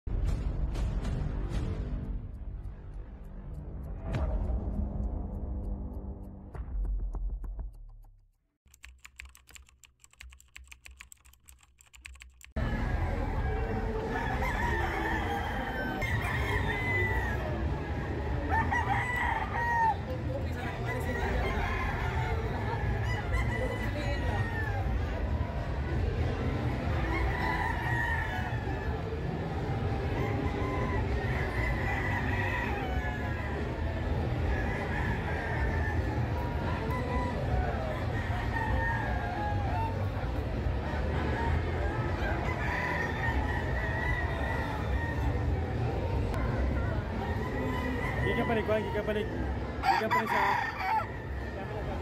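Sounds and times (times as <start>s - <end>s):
roosters crowing: 12.6s - 25.6s, 26.6s - 46.3s, 47.0s - 52.0s
crowded hall rumble: 12.6s - 48.4s.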